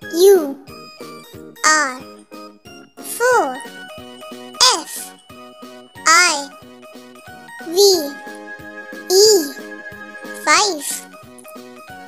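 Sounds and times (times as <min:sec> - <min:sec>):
child calling out letters: 0:00.0 - 0:00.6, 0:01.6 - 0:02.0, 0:03.1 - 0:03.6, 0:04.6 - 0:05.1, 0:06.1 - 0:06.5, 0:07.7 - 0:08.2, 0:09.1 - 0:09.6, 0:10.4 - 0:11.0
children's backing tune: 0:00.0 - 0:12.0.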